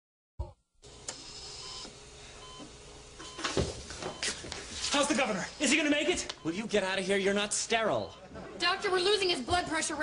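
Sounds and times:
heart monitor beeping: 1.2s - 4.6s, 5.5s - 7.1s.

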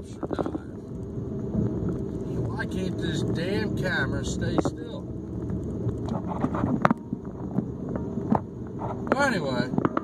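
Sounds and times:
low rumbling microphone noise: 0.0s - 10.0s.

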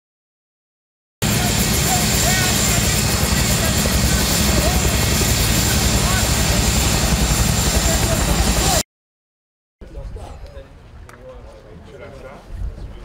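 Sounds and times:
helicopter rotor chopping: 1.2s - 8.8s.

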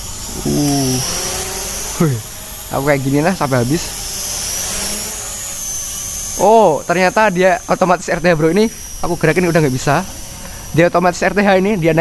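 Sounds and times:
drone propellers whining: 0.0s - 12.0s.

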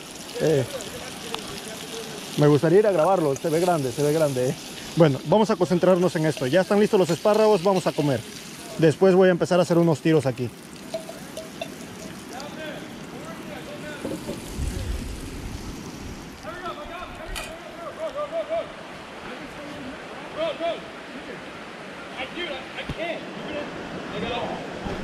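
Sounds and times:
river flowing: 0.0s - 25.0s
distant voices calling out: 16.4s - 23.8s.

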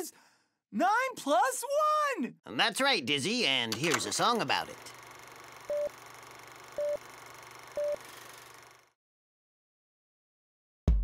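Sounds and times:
short beeps: 7.8s - 8.0s.

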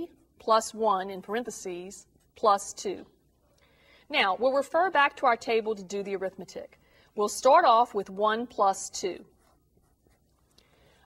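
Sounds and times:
marker writing on paper: 8.8s - 10.6s.

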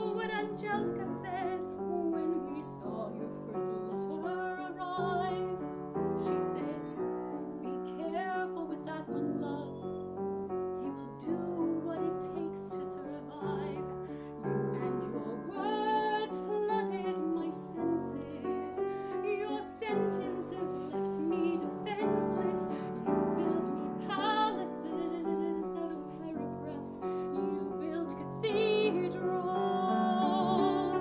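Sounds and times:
grand piano chords: 0.0s - 31.0s
soprano singing ballad: 0.0s - 31.0s.

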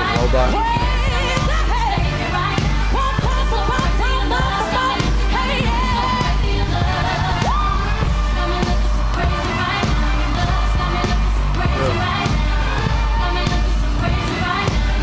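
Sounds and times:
person singing: 8.3s - 12.5s.

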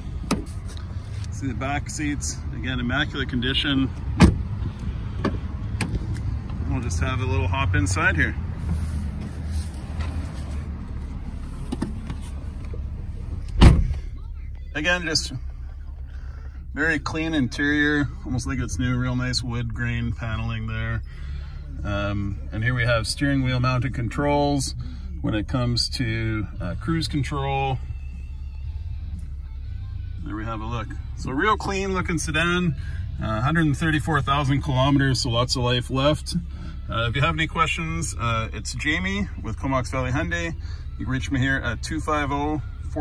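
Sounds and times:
steady low rumble: 0.0s - 43.0s
car door shutting thud: 4.2s - 4.5s, 13.5s - 14.0s.

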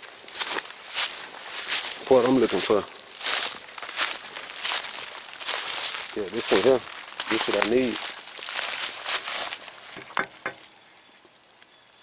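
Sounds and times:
dry leaves rustling underfoot: 0.0s - 12.0s.

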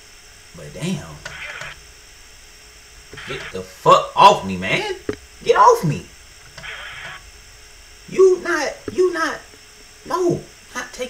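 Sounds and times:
low steady background hum: 0.0s - 11.0s.

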